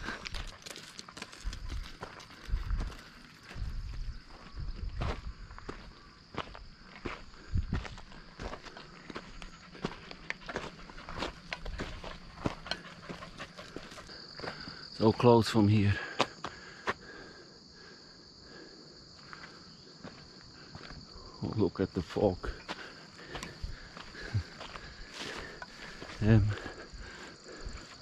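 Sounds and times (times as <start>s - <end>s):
footsteps on gravel: 0.0s - 14.9s, 19.2s - 21.1s, 22.5s - 28.0s.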